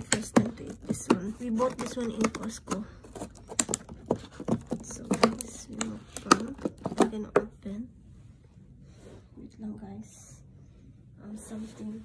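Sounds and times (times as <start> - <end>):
plastic food container crackling: 0.0 - 7.4.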